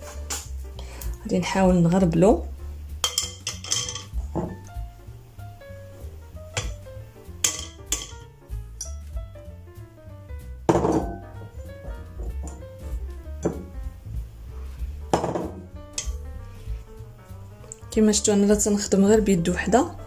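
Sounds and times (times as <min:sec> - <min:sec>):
background music: 0:00.0 - 0:20.0
sieve and glass bowls clinking: 0:03.0 - 0:04.6, 0:06.6 - 0:06.8, 0:07.4 - 0:09.0, 0:15.1 - 0:16.2.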